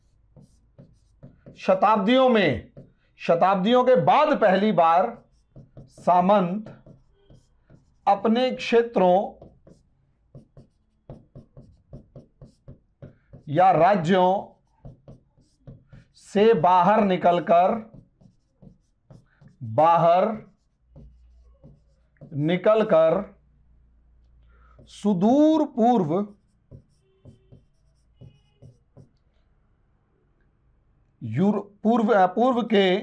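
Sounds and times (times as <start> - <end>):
marker pen writing on whiteboard: 0.0 - 23.5, 24.1 - 29.5.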